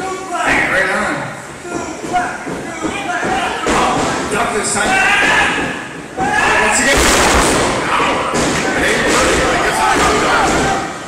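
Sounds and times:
voices calling out with echo: 0:00.0 - 0:11.0
wrestlers thudding on mat: 0:02.0 - 0:10.8.

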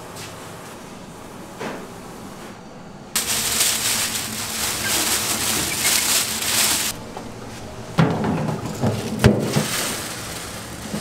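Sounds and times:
rice-milling machine grinding: 0:03.2 - 0:11.0.

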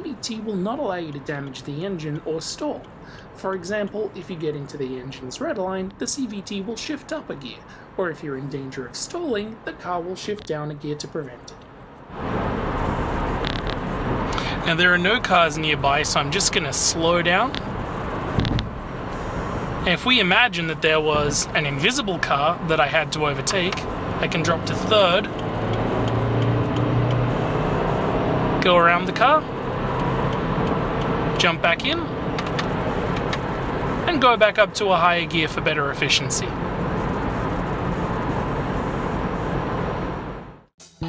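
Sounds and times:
road and drivetrain noise: 0:00.0 - 0:40.7
click and low thump: 0:18.4 - 0:18.8.

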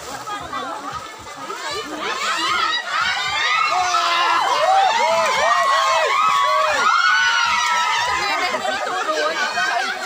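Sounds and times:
crowd shouting and cheering: 0:01.6 - 0:10.0.

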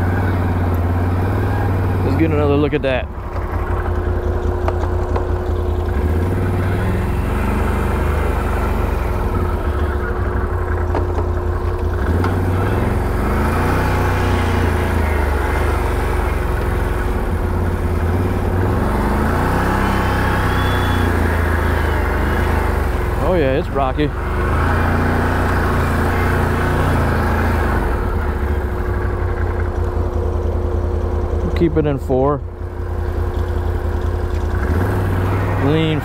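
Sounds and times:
atv engine revving: 0:00.0 - 0:36.0.

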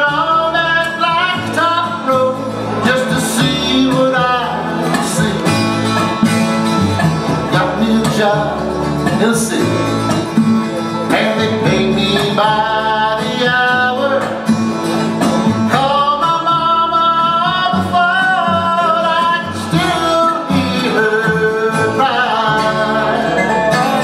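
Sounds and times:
man singing: 0:00.0 - 0:06.3, 0:07.2 - 0:24.0
bluegrass band playing: 0:00.0 - 0:24.0.

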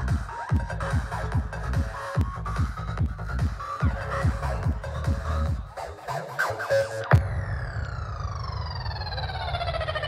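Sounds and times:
low bass rumble: 0:00.0 - 0:05.7, 0:07.1 - 0:10.0
siren-like synthesizer tone: 0:07.0 - 0:10.0.

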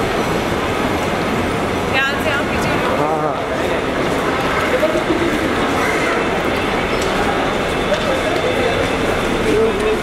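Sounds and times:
crowd voices: 0:00.7 - 0:10.0
luggage trolley wheels rolling: 0:02.6 - 0:10.0.

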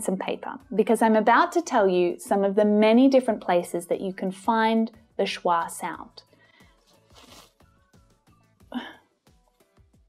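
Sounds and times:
soft background music: 0:00.0 - 0:10.0
brief swish: 0:07.0 - 0:07.5.

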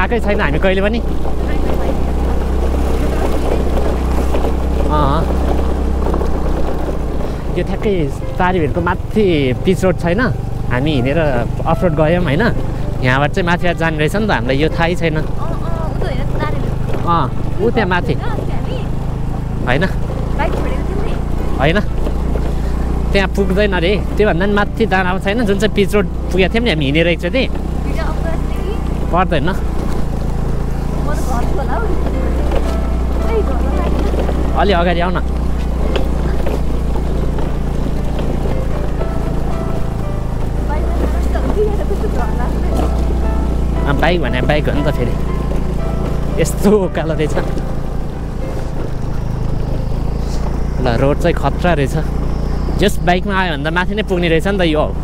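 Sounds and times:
road and wind rumble: 0:00.0 - 0:55.0
scooter engine running: 0:00.0 - 0:55.0.

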